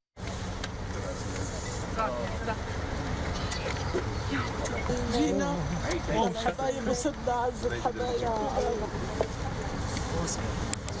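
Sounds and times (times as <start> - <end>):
vehicle engine idling: 0.2 - 11.0.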